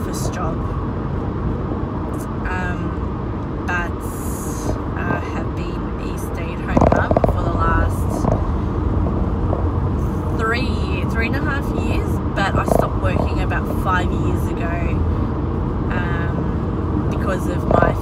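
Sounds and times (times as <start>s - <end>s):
woman talking: 0.0s - 0.7s, 2.2s - 8.3s, 10.4s - 15.0s, 15.9s - 16.5s, 17.1s - 18.0s
car interior rumble: 0.0s - 18.0s.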